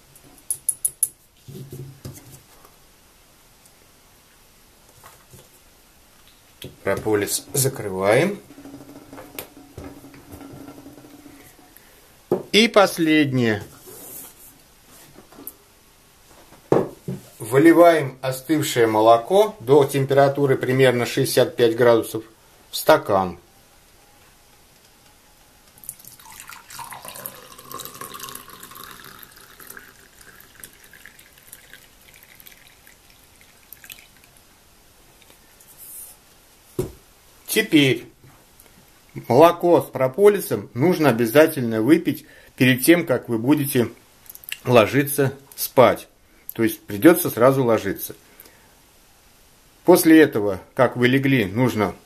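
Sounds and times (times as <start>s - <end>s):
milk pouring into a glass: 25.8s - 34.4s.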